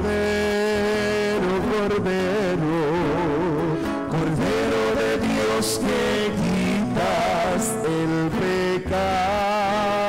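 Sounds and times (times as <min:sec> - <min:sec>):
sung church music: 0:00.0 - 0:10.0.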